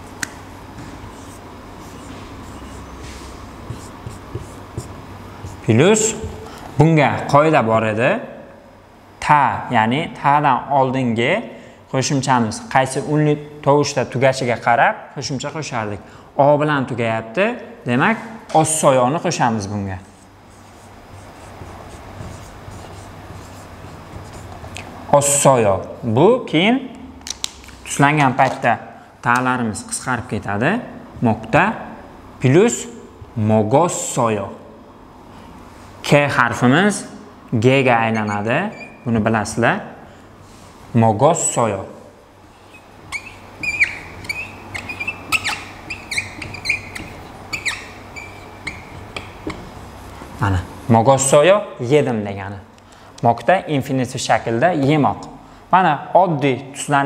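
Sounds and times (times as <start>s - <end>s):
marker writing on whiteboard: 0.0s - 6.6s, 20.0s - 25.0s, 37.9s - 39.1s, 42.6s - 50.4s.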